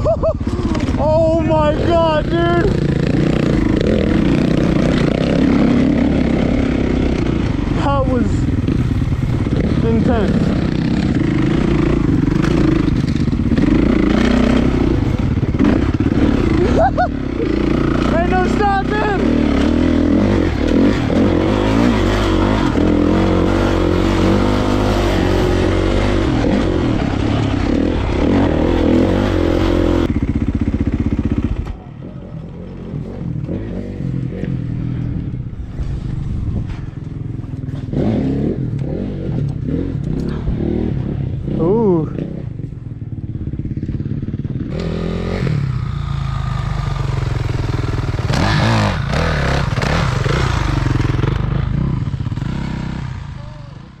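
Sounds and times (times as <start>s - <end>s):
dirt bike engine under throttle: 0.0s - 54.0s
wind noise on microphone: 35.1s - 37.2s.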